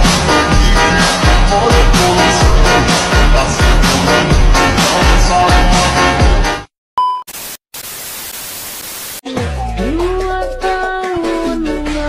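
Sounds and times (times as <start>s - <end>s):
short high beep: 7.0s - 7.4s
television static hiss: 7.4s - 9.2s.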